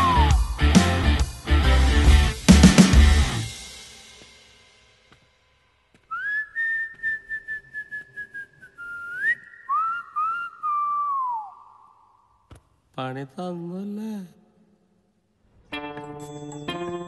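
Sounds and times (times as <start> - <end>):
comic whistled tune: 0.0 - 0.7, 6.1 - 12.3.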